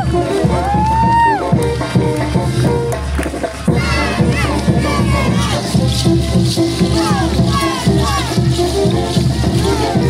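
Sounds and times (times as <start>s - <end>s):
crowd cheering: 0.0s - 2.7s, 3.7s - 10.0s
loud band music with low beat: 0.0s - 10.0s
high falling whoops: 0.7s - 1.5s.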